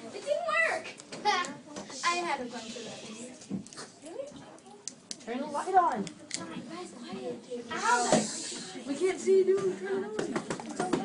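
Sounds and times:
background voices talking: 0.0s - 11.0s
breathy hiss: 1.9s - 3.3s, 7.7s - 8.8s.

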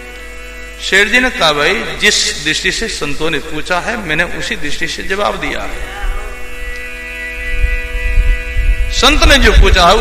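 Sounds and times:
musical drone of held tones: 0.0s - 10.0s.

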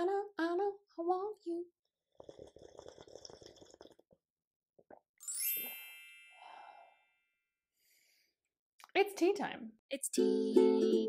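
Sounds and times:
tea slurped from mug: 2.1s - 4.2s.

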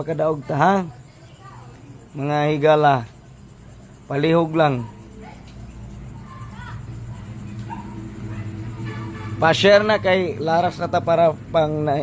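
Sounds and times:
faint background music: 0.0s - 12.0s
dog barking: 4.7s - 5.5s, 7.6s - 9.2s.

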